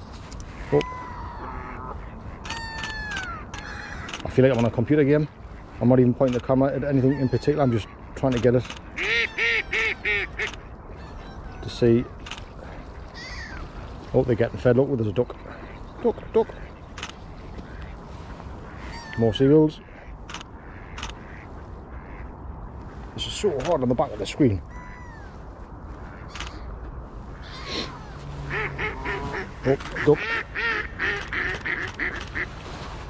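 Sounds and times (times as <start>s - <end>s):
ducks and gulls calling: 0.0s - 22.6s, 23.4s - 32.8s
outdoor background noise: 0.0s - 33.0s.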